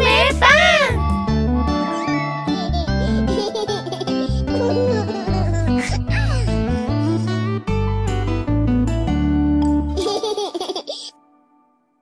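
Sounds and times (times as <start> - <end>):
children laughing: 2.5 - 6.4.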